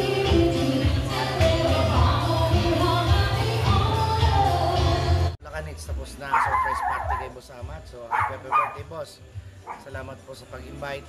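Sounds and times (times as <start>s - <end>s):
live band with singing: 0.0s - 5.4s
dog whining: 6.3s - 7.3s
dog barking: 6.3s - 7.4s, 8.1s - 8.9s, 9.6s - 9.9s.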